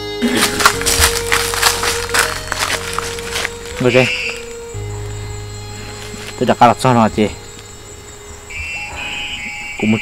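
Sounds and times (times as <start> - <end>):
soft background music: 0.0 - 10.0
footsteps crunching dry leaves: 0.2 - 7.8.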